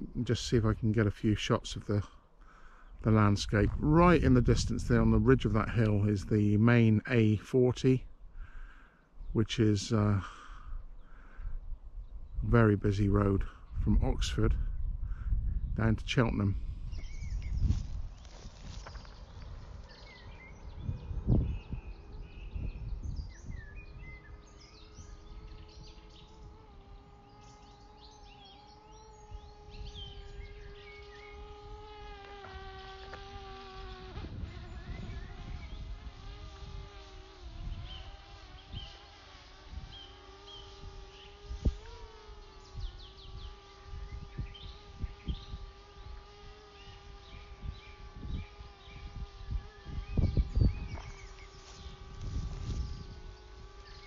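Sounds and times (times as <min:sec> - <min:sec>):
drone propellers buzzing: 0:00.0 - 0:54.0.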